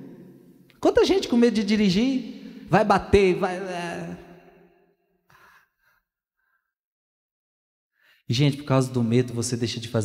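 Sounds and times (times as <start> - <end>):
man speaking: 0.8 - 4.3, 8.3 - 10.0
faint breath: 5.3 - 6.8, 7.9 - 8.3.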